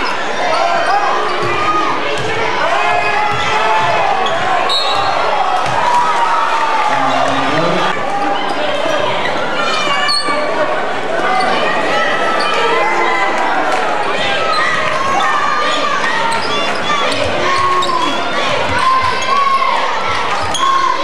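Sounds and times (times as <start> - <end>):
crowd chatter and shouting: 0.0 - 21.0.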